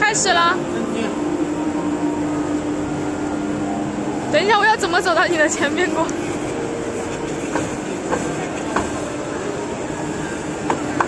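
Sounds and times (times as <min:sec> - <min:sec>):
paper cutter humming: 0:00.0 - 0:11.0.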